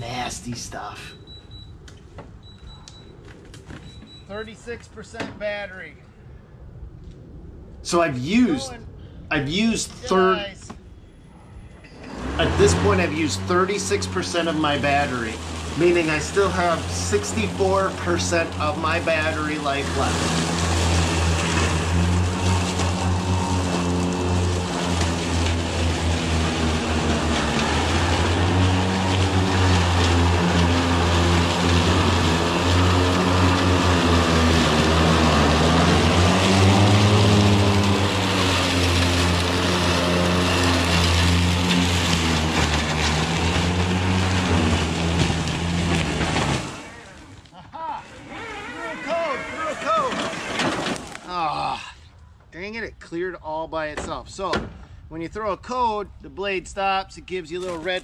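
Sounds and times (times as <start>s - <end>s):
mower blades cutting grass: 11.9s - 47.5s, 48.8s - 51.3s.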